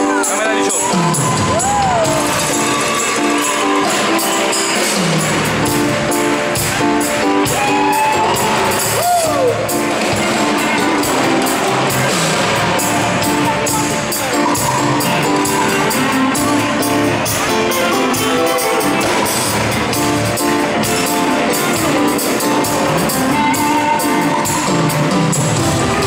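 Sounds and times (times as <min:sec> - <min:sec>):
live pop band playing: 0:00.0 - 0:26.0.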